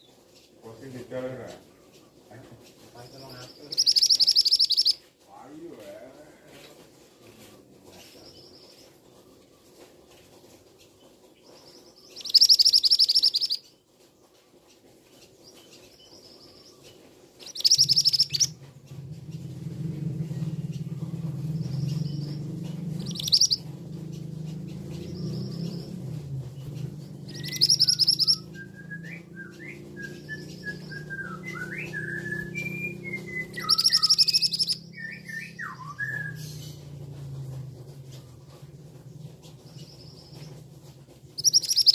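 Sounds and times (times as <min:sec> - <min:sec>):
soft low bird chirps: 0:03.2 - 0:05.0, 0:12.1 - 0:13.7, 0:15.6 - 0:19.6, 0:20.3 - 0:37.3, 0:41.4 - 0:41.9
bird giving harsh high calls: 0:03.7 - 0:05.0, 0:23.0 - 0:23.7, 0:27.3 - 0:28.8, 0:31.0 - 0:36.5, 0:41.4 - 0:41.9
steady low hum: 0:17.4 - 0:41.9.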